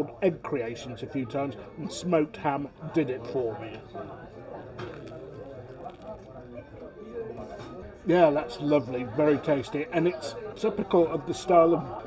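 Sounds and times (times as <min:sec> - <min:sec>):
background chatter of people: 0:00.0 - 0:12.0.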